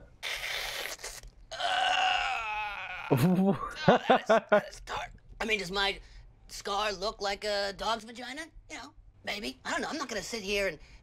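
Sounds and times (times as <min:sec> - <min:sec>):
person moaning: 0:01.5 - 0:03.5.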